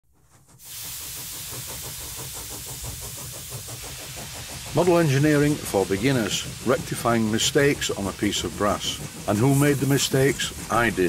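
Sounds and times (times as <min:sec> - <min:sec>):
fast mechanical beat: 0:00.2 - 0:11.0
steam hissing: 0:00.2 - 0:11.0.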